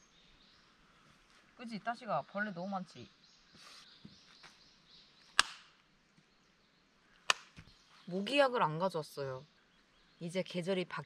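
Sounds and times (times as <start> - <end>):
hand slaps: 5.4 - 5.7, 7.3 - 7.6.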